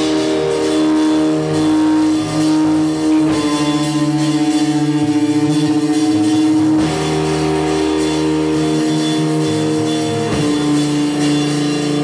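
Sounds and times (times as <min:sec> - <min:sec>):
rock band sustained chord: 0:00.0 - 0:12.0.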